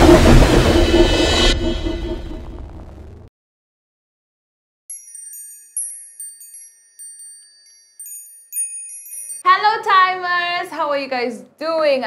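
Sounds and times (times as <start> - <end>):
shimmering bell-like chimes: 4.9 - 9.5.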